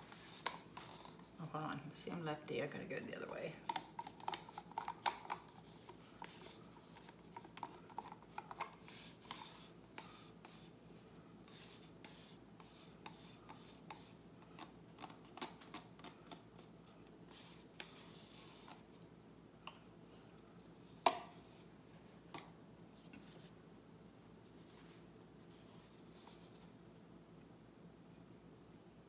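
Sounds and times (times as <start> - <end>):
plastic cups and sticks scraping: 0.0 - 2.2, 3.4 - 10.7, 11.5 - 16.7, 17.3 - 18.9.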